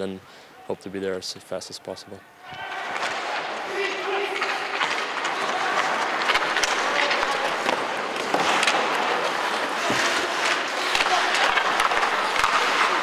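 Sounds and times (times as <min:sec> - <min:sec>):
hockey sticks and pucks clacking: 0:02.4 - 0:13.0
skate blades scraping ice: 0:02.8 - 0:13.0.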